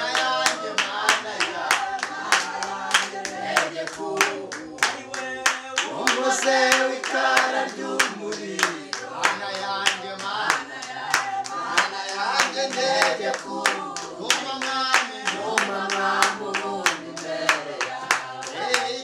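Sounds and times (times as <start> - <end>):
group singing worship song: 0.0 - 19.0
hand-clapping: 0.0 - 19.0.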